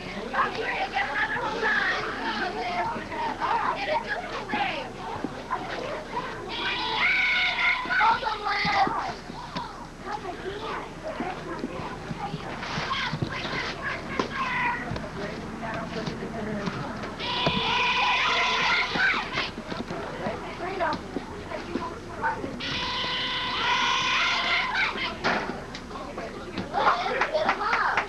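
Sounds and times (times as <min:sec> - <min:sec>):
children calling out and chattering: 0:00.0 - 0:28.0
high-pitched group cheers: 0:22.7 - 0:25.0.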